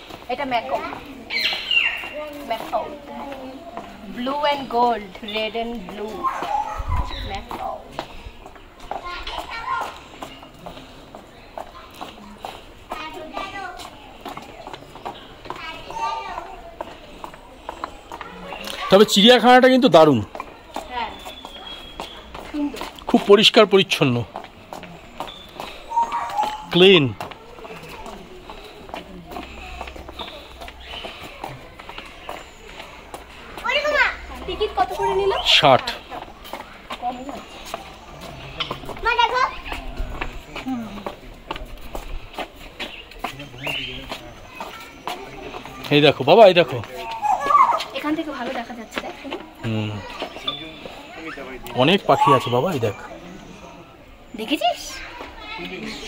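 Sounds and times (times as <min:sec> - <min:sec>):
footsteps on tiles: 0:00.0 - 0:19.0, 0:20.2 - 0:51.1
chatter of people and children: 0:00.0 - 0:56.0
child's high-pitched call: 0:15.6 - 0:16.7, 0:47.1 - 0:48.0
people talking: 0:26.0 - 0:41.8, 0:43.1 - 0:56.0.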